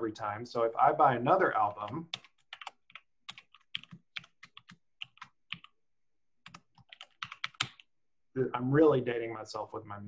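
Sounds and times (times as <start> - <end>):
computer keyboard typing: 1.5 - 5.8, 6.4 - 7.9.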